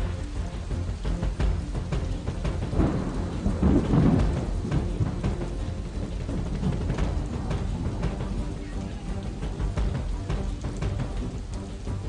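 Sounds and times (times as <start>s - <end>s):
steady rain: 0.0s - 12.0s
thunder rumbling: 1.3s - 11.6s.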